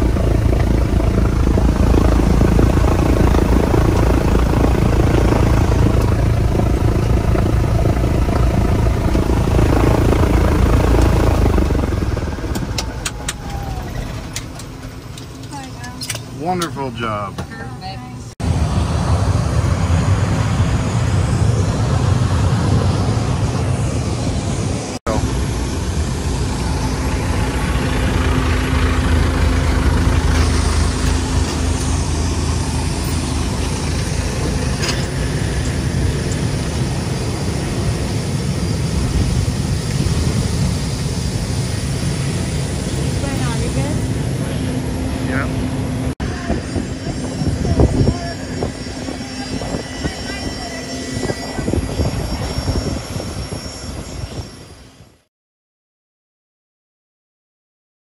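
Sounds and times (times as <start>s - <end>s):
propeller plane engines droning: 0.0s - 55.3s.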